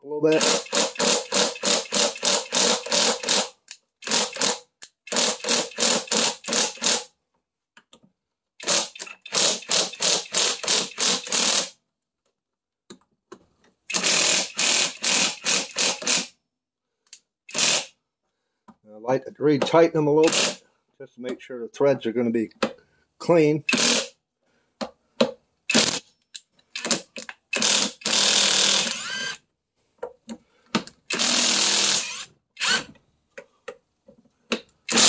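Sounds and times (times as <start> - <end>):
hand ratchet clicking: 0.3 - 7.1, 8.6 - 11.7, 13.9 - 16.3, 17.1 - 17.9, 20.2 - 20.6, 23.7 - 24.1, 25.7 - 29.4, 31.1 - 32.9, 34.5 - 35.0.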